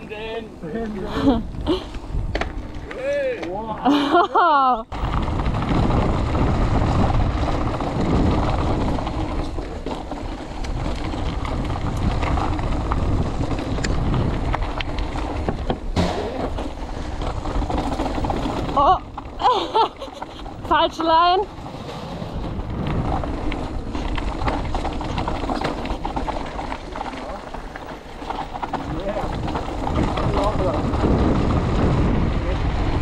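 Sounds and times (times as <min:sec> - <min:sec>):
bike tyre roar on gravel: 0:00.0 - 0:33.0
rider laughing and speaking: 0:00.4 - 0:01.9, 0:03.0 - 0:04.9, 0:18.8 - 0:20.7
wind on camera microphone: 0:01.1 - 0:03.0, 0:04.8 - 0:33.0
sharp knocks from bumps: 0:15.5 - 0:16.8.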